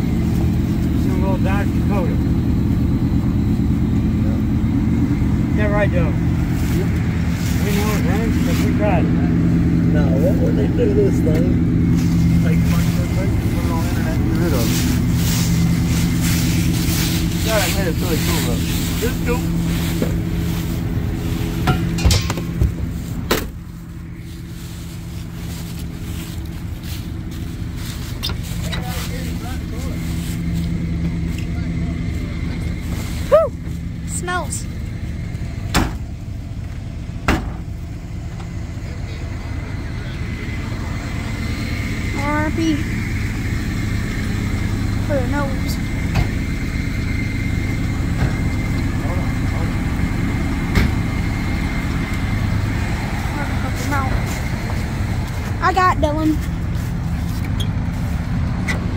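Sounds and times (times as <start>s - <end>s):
vehicle engine idling: 0.0s - 58.9s
rear hatch shutting knock: 35.7s - 36.0s, 37.2s - 37.7s.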